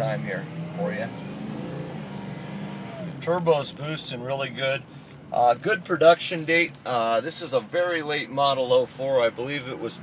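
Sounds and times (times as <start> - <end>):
diesel truck engine under full throttle: 0.0 - 6.1.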